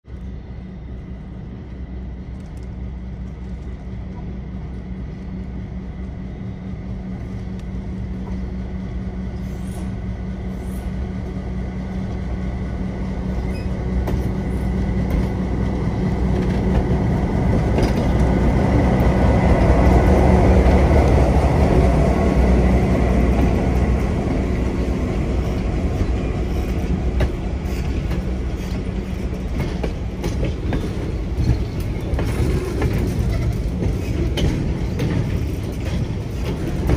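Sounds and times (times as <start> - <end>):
diesel locomotive engine drone: 0.0 - 36.9
train cars rolling on rails: 0.1 - 36.9.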